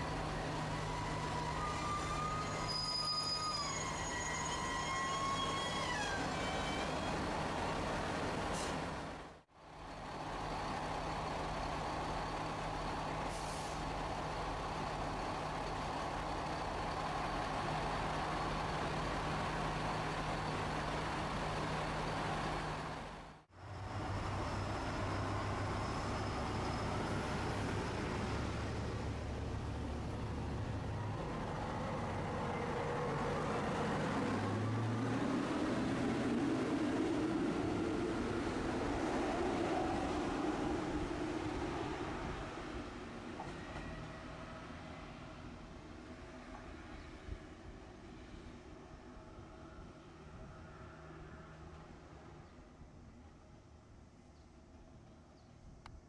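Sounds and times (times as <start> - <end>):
diesel railcar engine idling: 7.3 - 33.6.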